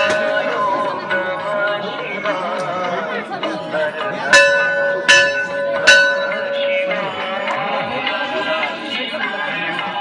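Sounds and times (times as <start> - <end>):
temple bell ringing: 0.0 - 10.0.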